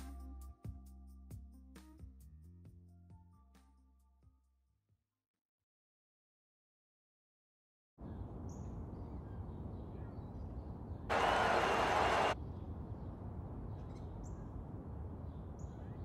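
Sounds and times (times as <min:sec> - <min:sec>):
burst of noise: 0:11.1 - 0:12.4.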